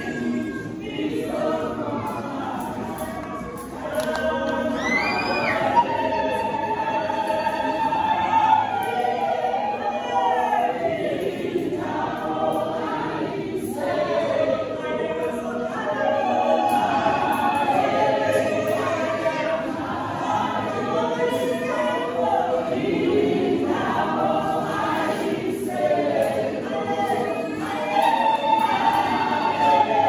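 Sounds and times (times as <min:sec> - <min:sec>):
women's choir singing gospel: 0:00.0 - 0:30.0.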